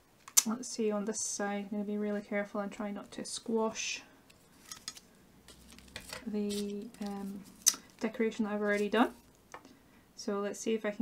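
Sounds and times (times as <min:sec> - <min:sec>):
dough and tools handling: 0:04.2 - 0:09.6.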